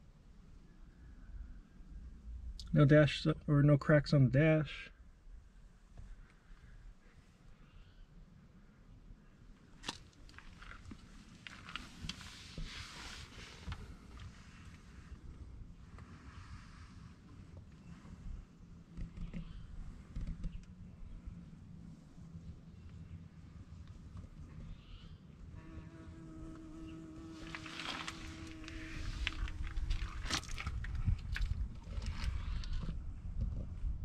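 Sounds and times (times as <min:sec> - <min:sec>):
faint rustling and shuffling: 0:09.6 - 0:24.8, 0:27.2 - 0:33.9.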